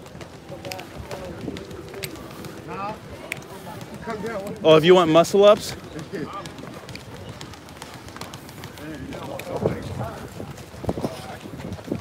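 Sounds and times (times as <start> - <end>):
footsteps on concrete: 0.0 - 12.0
outdoor ambience: 0.0 - 12.0.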